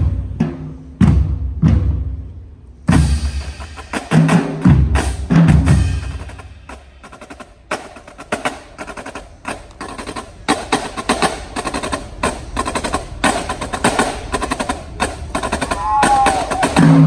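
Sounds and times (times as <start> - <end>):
bass drums: 0.0 - 2.3, 2.9 - 6.8
tenor drums: 0.0 - 17.0
snare drums: 2.9 - 17.0.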